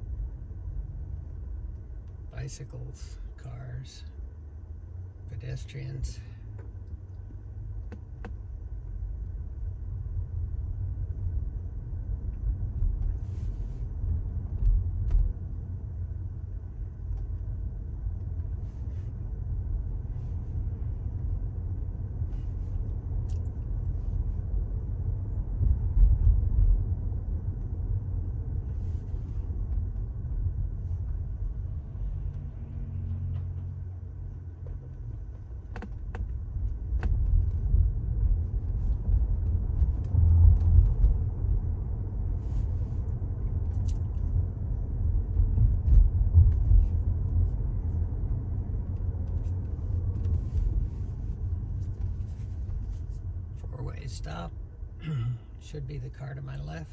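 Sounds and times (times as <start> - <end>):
car road and tyre rumble: 0.0 - 56.9.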